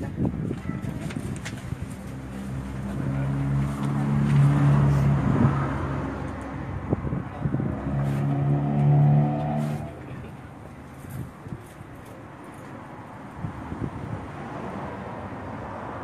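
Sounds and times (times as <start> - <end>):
vehicle engine humming: 1.0 - 13.2.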